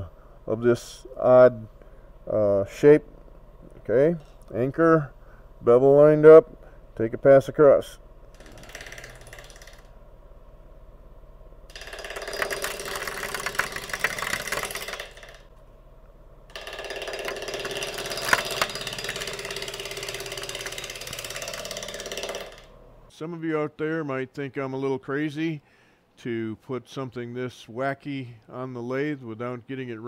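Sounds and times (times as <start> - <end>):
lathe running: 8.0 - 23.0
gouge clattering on spinning wood: 11.7 - 15.5, 16.5 - 22.7.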